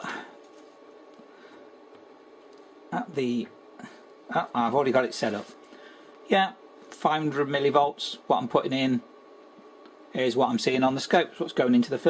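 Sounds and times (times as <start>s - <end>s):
faint electrical hum: 0.0s - 12.0s
low room hiss: 0.0s - 12.0s.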